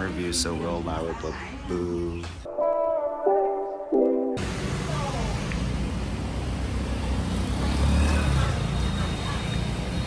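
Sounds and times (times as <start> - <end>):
road noise: 4.4 - 10.0
vehicle engine passing: 4.4 - 10.0.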